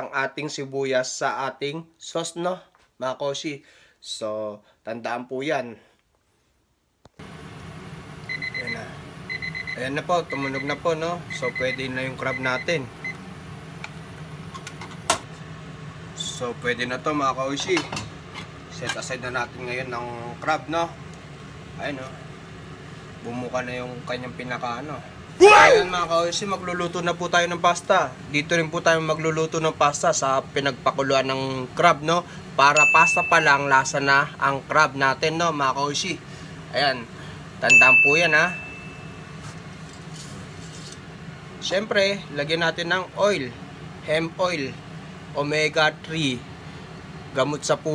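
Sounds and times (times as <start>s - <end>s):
low kitchen hum: 6.2s - 47.9s
kitchen timer beep: 8.3s - 13.2s, 32.7s - 33.9s, 37.7s - 39.3s.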